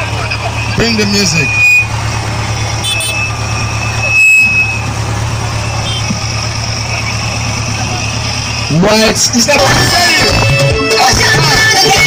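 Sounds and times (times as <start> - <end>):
van engine idling: 0.0 - 12.0
brief high tone: 0.4 - 5.0, 5.6 - 6.2.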